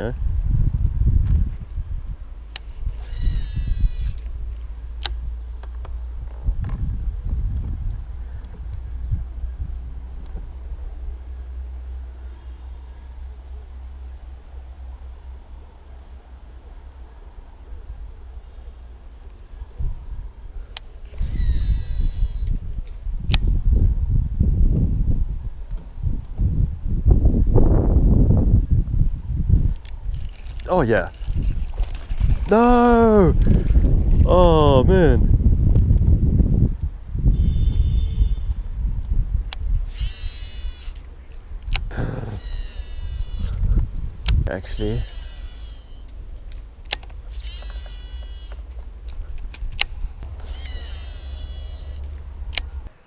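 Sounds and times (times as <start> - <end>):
fishing reel spool whirring: 2.7 - 4.3, 21.1 - 22.5, 30.1 - 32.5, 39.9 - 41.0, 42.2 - 43.6, 44.7 - 46.1, 47.3 - 48.6, 50.3 - 52.2
fishing reel clicks: 30.1 - 32.0, 39.9 - 41.0, 44.7 - 46.1, 46.9 - 48.6, 49.8 - 52.7.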